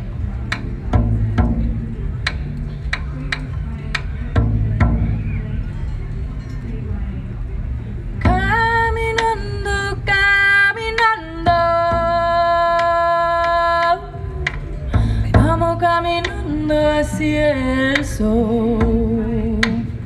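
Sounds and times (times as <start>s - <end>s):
frame drum: 0.0s - 7.2s, 8.2s - 20.0s
woman singing: 8.2s - 20.0s.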